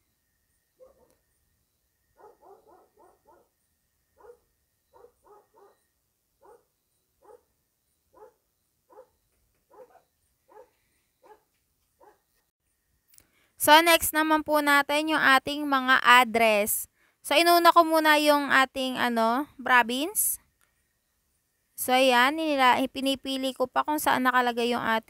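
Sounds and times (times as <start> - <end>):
dog barking faintly: 0.8 - 1.2, 2.2 - 3.5, 4.2 - 7.5, 8.1 - 12.3.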